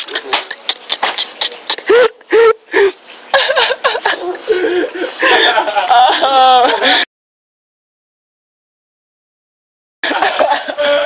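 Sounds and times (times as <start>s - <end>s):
voices: 0.0s - 3.0s
laughter: 0.1s - 7.1s, 10.0s - 11.0s.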